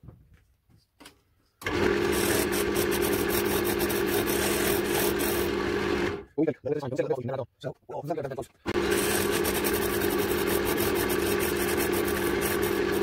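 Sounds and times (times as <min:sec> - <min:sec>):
lathe motor hum: 0:01.6 - 0:06.2, 0:08.7 - 0:13.0
sanding hiss: 0:08.9 - 0:13.0.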